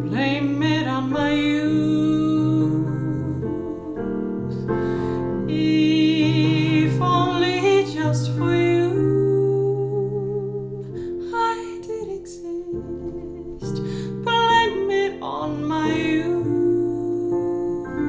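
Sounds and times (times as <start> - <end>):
digital piano chords: 0.0 - 18.0
woman singing slow song: 0.0 - 18.0.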